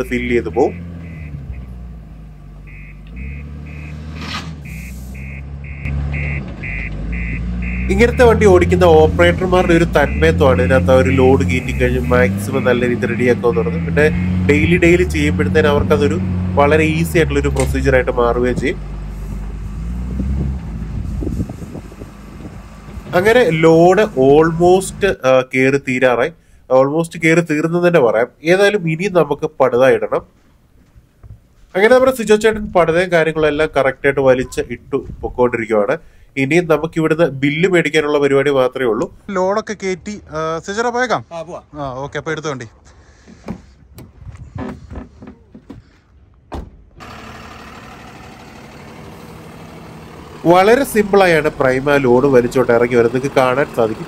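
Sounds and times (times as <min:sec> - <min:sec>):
diesel engine running: 0:00.0 - 0:26.7, 0:47.0 - 0:54.0
truck door shutting: 0:43.2 - 0:47.1.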